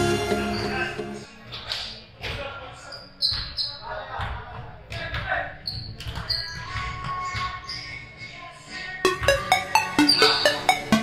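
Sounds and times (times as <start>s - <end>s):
sneakers squeaking on hardwood floor: 3.0s - 3.8s, 5.6s - 7.9s.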